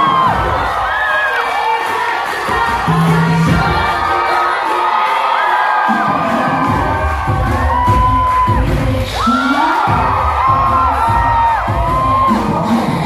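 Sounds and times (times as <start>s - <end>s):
heavy bass beat: 0.0s - 5.2s, 5.8s - 13.0s
crowd cheering and shouting: 0.0s - 13.0s
pop song over sound system: 0.0s - 13.0s.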